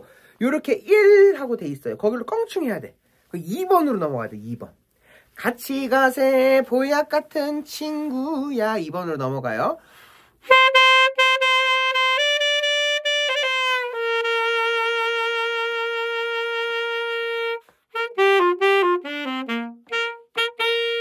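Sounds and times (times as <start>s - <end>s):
solo alto saxophone: 10.4s - 21.0s.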